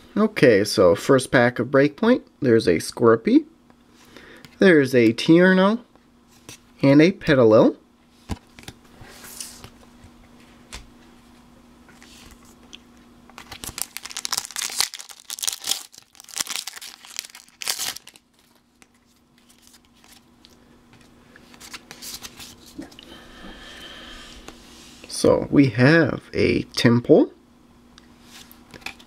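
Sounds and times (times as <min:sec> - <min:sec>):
cards rustling: 0:11.9 - 0:22.9
foil wrapper tearing and crinkling: 0:13.4 - 0:19.8.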